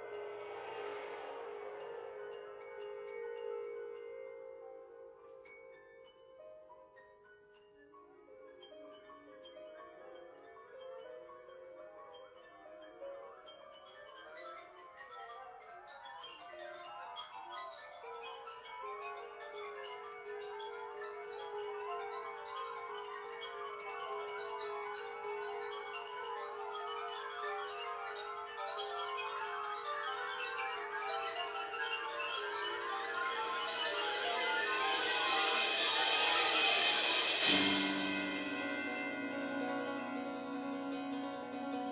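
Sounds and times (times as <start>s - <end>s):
ringing mallet percussion notes: 8.3s - 41.9s
concert band music: 32.3s - 41.9s.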